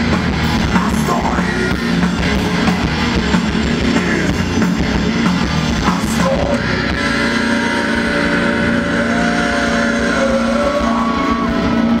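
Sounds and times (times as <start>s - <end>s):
drumming: 0.0s - 12.0s
guitar feedback whine: 0.0s - 12.0s
rock band with distorted guitars: 0.0s - 12.0s.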